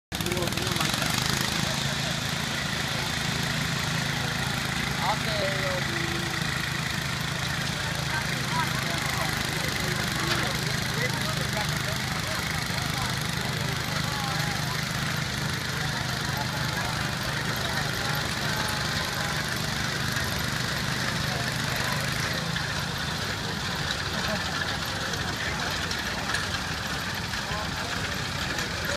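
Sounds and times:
garden tractor engine under load: 0:00.1 - 0:28.9.

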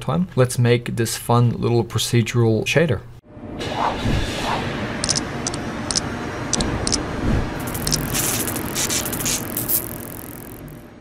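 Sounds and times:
whooshing static wash: 0:06.4 - 0:10.8
crackle bursts: 0:07.6 - 0:10.9.

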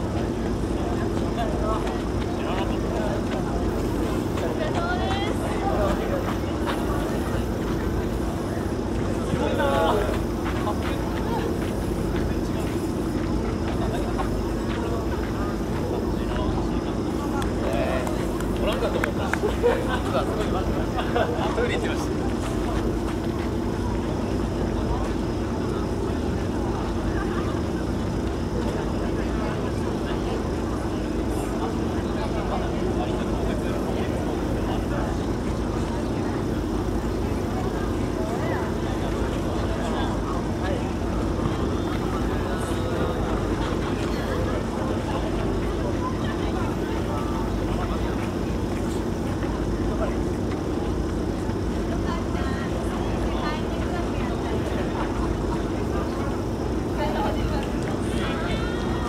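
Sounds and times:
crowd chatter: 0:00.0 - 0:59.0
steady low hum: 0:00.0 - 0:59.0.

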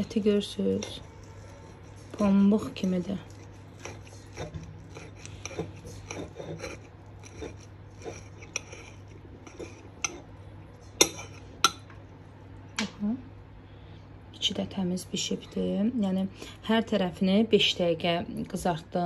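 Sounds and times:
knife and fork scraping plate: 0:00.0 - 0:11.8.

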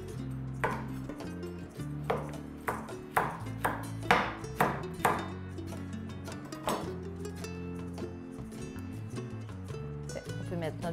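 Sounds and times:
background music: 0:00.0 - 0:10.9
knife tapping on cutting board: 0:02.1 - 0:05.3.

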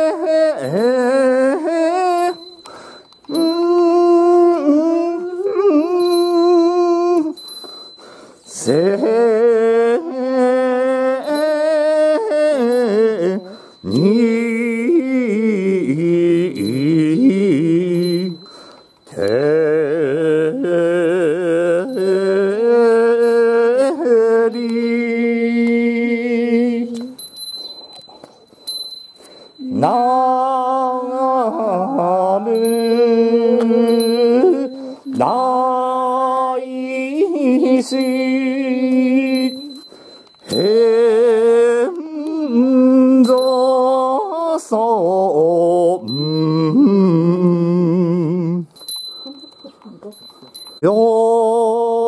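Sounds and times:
small hand bell ringing: 0:00.6 - 0:09.4, 0:10.0 - 0:44.5, 0:46.0 - 0:51.1.

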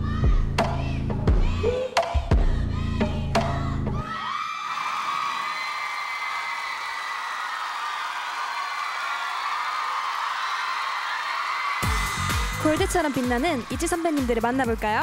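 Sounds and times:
studio crowd cheering and whooping: 0:03.9 - 0:15.0.

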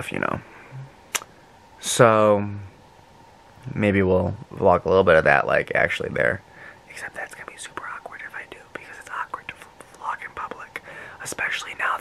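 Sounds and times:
man whispering: 0:06.9 - 0:12.0.

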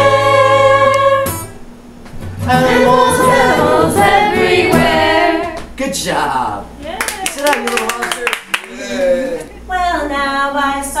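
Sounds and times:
adults singing together: 0:00.0 - 0:01.5, 0:02.4 - 0:05.8
hand clapping: 0:07.0 - 0:08.7.

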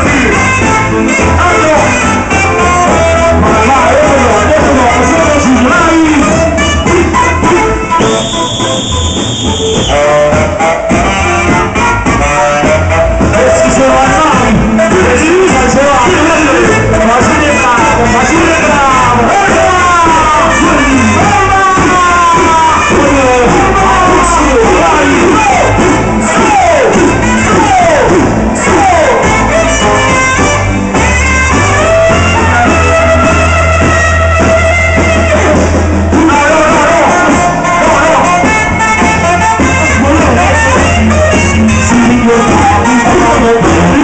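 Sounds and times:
falling pitch slides: 0:00.0 - 0:13.9
crowd noise: 0:00.0 - 0:44.0
loud band music: 0:00.0 - 0:44.0.

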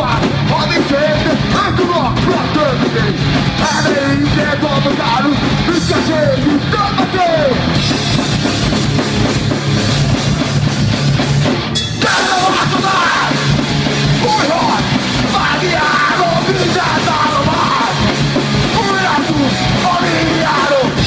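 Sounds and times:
shouted lead vocals: 0:00.0 - 0:10.2, 0:11.9 - 0:21.0
rock band playing: 0:00.0 - 0:21.0.

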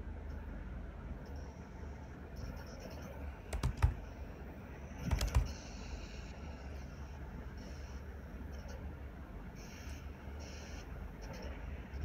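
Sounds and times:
steady low hum: 0:00.0 - 0:12.0
keyboard typing: 0:02.8 - 0:04.1, 0:05.0 - 0:05.6.

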